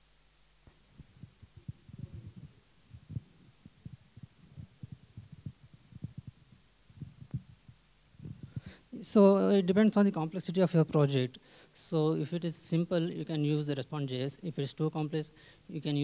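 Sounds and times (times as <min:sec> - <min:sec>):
microphone handling thumps: 0:00.6 - 0:08.8.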